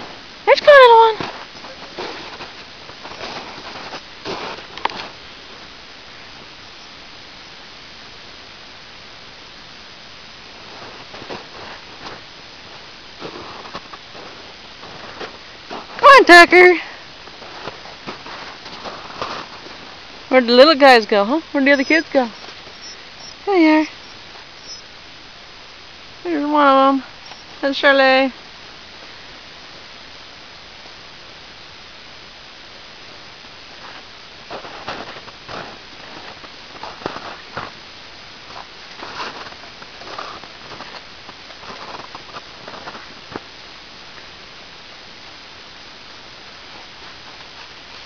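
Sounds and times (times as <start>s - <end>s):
footsteps in snow: 0.0s - 5.8s, 10.5s - 16.2s, 17.2s - 24.9s, 33.7s - 43.5s
steady low hiss: 0.0s - 48.0s.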